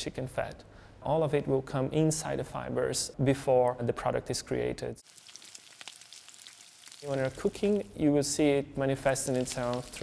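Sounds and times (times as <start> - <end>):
food frying in oil: 5.0 - 8.0, 9.1 - 10.0.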